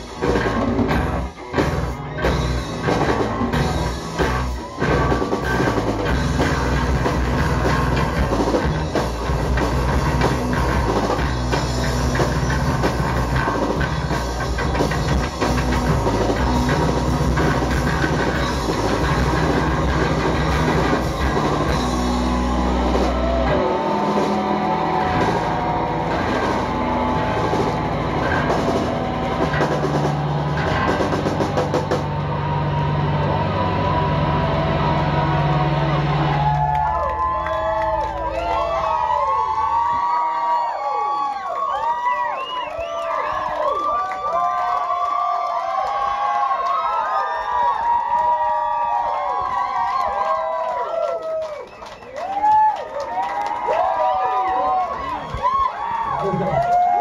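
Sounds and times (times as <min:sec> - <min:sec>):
live rock band playing: 0:00.0 - 0:39.9
ringing guitar and bass notes: 0:00.0 - 0:40.2.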